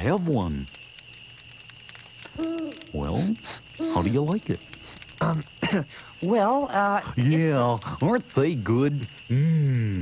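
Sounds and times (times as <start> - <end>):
owl hoot: 2.3 - 4.3.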